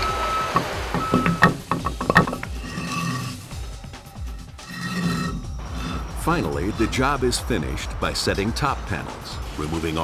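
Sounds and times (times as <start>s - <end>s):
vehicle reversing alarm beeping: 0.0s - 1.6s.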